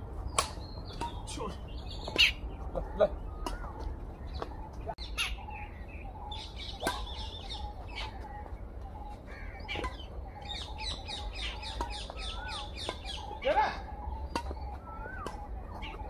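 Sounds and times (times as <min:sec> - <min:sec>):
birds chirping: 0:00.0 - 0:16.0
badminton rackets hitting shuttlecock: 0:00.3 - 0:02.4, 0:03.4 - 0:04.5, 0:06.7 - 0:07.2, 0:09.7 - 0:10.1, 0:14.2 - 0:16.0.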